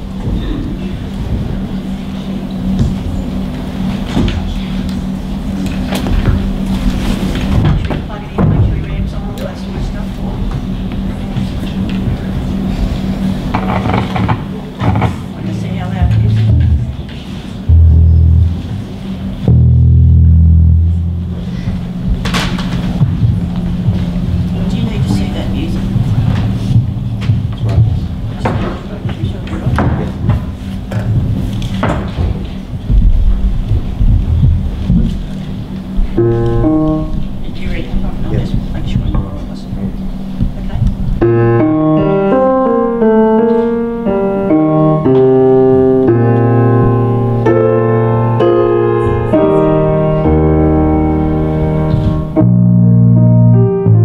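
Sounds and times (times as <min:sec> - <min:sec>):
low electrical hum: 0:00.0 - 0:54.0
low rumble: 0:11.8 - 0:29.4, 0:32.4 - 0:42.2
electric bass guitar notes: 0:12.4 - 0:28.6, 0:32.9 - 0:54.0.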